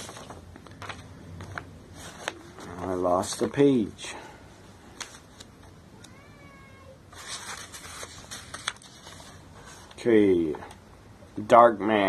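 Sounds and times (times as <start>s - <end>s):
papers rustling: 0.0s - 3.6s, 7.1s - 10.0s
cat meowing faintly: 6.0s - 7.0s.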